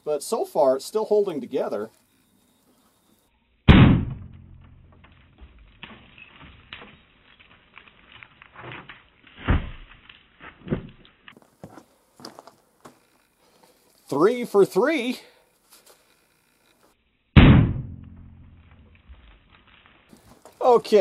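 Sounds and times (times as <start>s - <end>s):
pistol shot: 3.7s - 4.9s, 17.4s - 18.7s.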